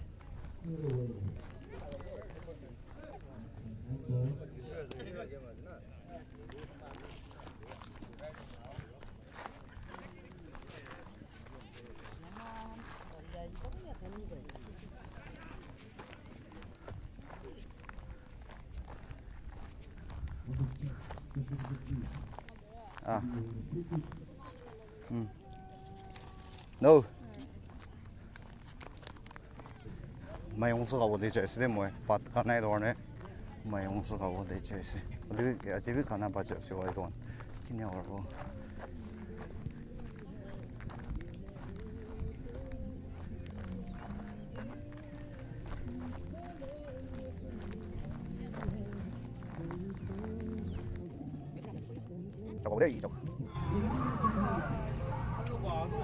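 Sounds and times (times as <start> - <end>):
footsteps on dry ground and grass: 0.0 - 3.6, 6.2 - 56.0
faint voices: 0.0 - 56.0.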